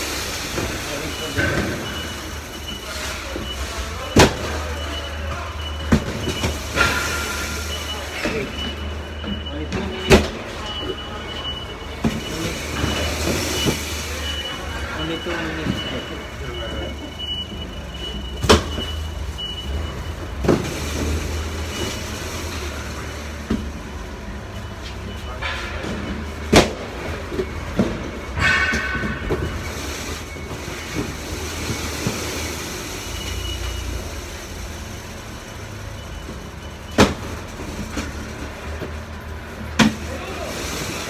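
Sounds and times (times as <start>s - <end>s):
cardboard boxes on roller conveyor: 0.0s - 41.0s.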